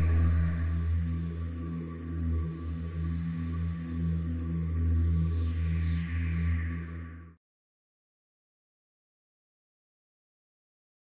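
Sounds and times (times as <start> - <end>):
low sustained bass music: 0.0 - 5.6.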